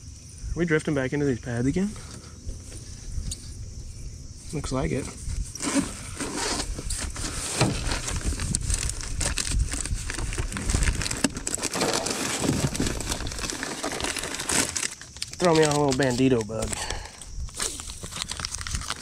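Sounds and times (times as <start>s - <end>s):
plastic bait rustling and crinkling: 4.9s - 19.0s.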